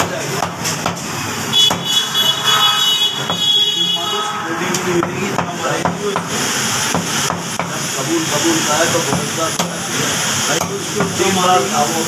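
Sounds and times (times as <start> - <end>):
cleaver striking chopping block: 0.0 - 1.9.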